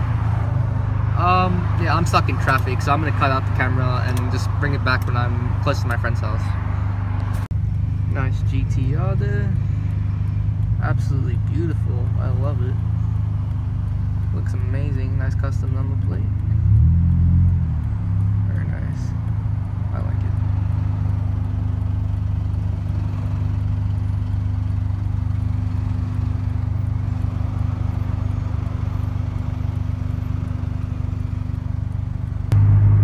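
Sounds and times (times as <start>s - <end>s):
car engine and road noise: 0.0s - 33.0s.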